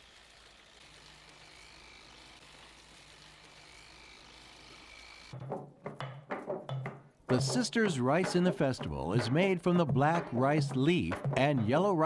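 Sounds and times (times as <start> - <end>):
knocks: 5.4 - 10.3.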